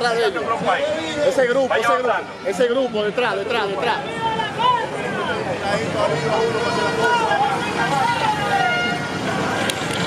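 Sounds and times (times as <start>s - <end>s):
crowd voices calling out: 0.0s - 10.0s
horns holding steady tones: 0.0s - 10.0s.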